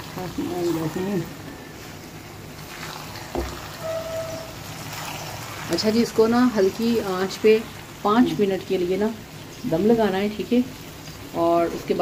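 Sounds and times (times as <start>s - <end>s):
food sizzling in a wok: 0.0s - 12.0s
short steady tone: 3.8s - 4.7s.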